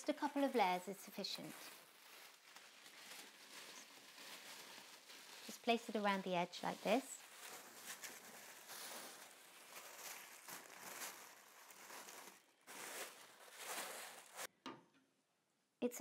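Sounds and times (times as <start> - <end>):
tissue paper rustling: 0.1 - 14.5.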